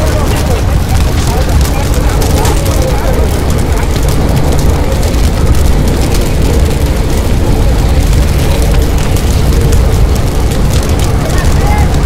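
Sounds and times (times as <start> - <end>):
faint voices: 0.0 - 12.0
fire burning with low rumble: 0.0 - 12.0.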